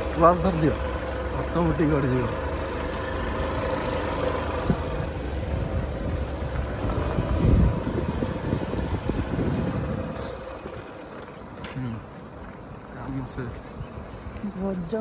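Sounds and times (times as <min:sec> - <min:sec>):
vehicle engine running: 0:00.0 - 0:15.0
wind rumbling on microphone: 0:04.6 - 0:11.5.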